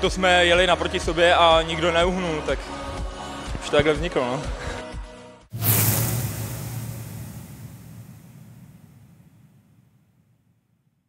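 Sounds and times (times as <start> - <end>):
whooshing sound effect: 5.5 - 9.7.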